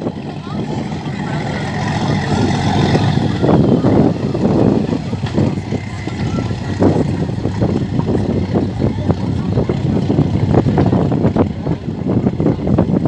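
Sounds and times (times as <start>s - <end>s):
boat diesel engines rumbling: 0.0s - 13.0s
wake water washing: 0.0s - 13.0s.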